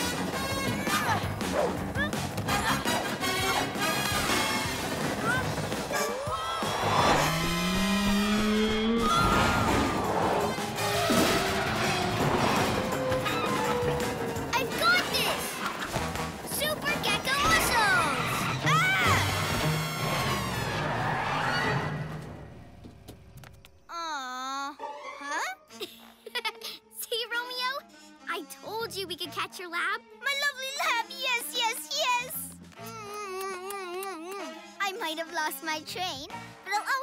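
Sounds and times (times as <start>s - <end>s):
cartoon action music: 0.0s - 22.5s
vehicle and crash effects: 6.6s - 15.7s
characters yelling: 16.5s - 19.4s.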